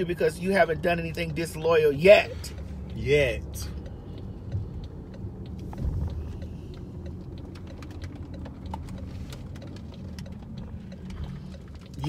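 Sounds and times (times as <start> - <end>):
car rumble inside cabin: 0.0 - 12.0.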